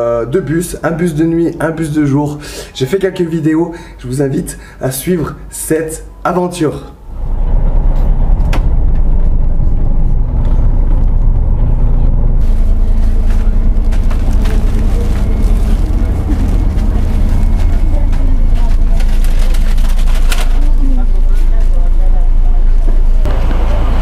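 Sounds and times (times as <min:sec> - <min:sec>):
bus engine rumble: 0:07.0 - 0:24.0.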